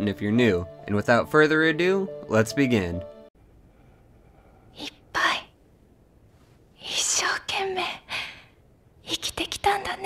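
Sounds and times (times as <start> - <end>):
woman speaking softly: 9.0 - 10.0.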